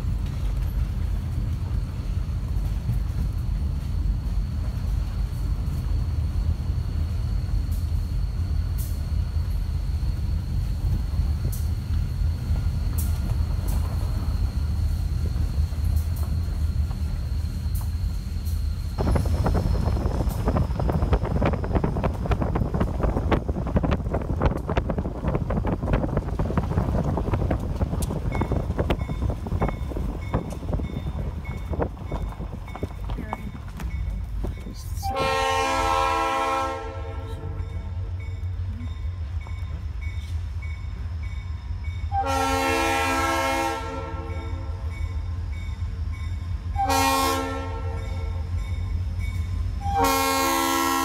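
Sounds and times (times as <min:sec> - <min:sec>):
freight train rumbling: 0:00.0 - 0:51.0.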